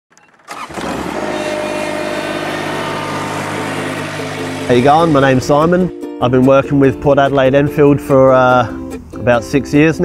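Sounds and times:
ride-on mower diesel engine running: 0.2 - 5.9.

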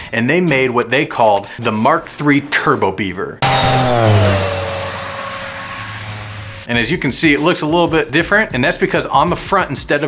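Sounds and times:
propeller plane passing low: 3.4 - 6.7.

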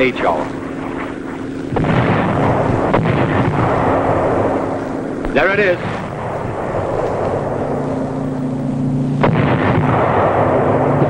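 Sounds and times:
artillery bombardment rumbling: 0.0 - 11.0
old film soundtrack hum: 0.0 - 11.0
sharp artillery report: 0.0 - 11.0.

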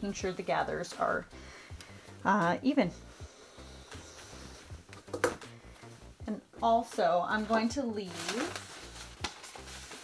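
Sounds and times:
quiet background music: 0.0 - 10.0
fabric rustling: 6.7 - 10.0.

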